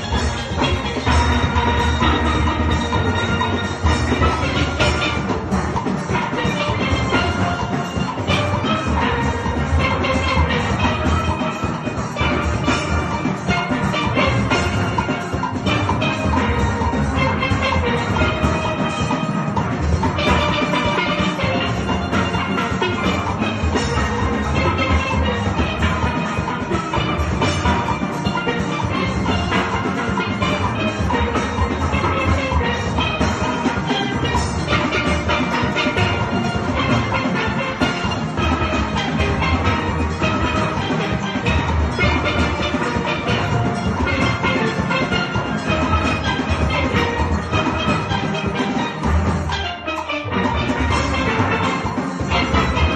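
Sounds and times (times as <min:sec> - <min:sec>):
steel band playing: 0:00.0 - 0:52.9.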